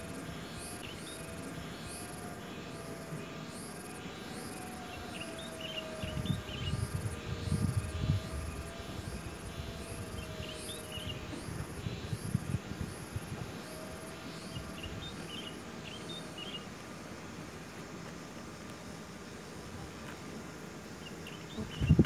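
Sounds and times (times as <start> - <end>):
faint steady drone: 0.0 - 22.0
insects chirping: 0.0 - 22.0.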